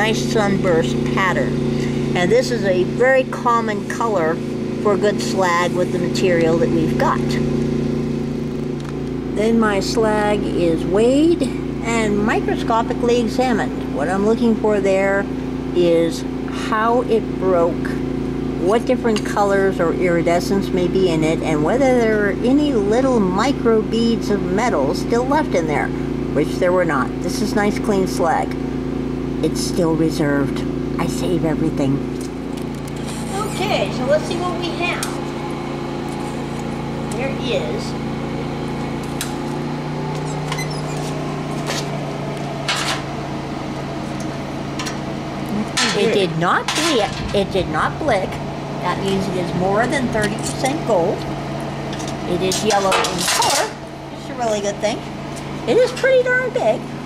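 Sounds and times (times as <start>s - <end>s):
motor humming: 0.0s - 57.0s.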